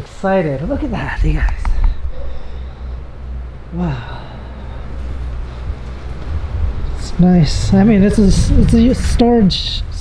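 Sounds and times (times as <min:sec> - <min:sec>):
soft low thumps: 0:01.1 - 0:10.0
wind buffeting microphone: 0:04.3 - 0:10.0.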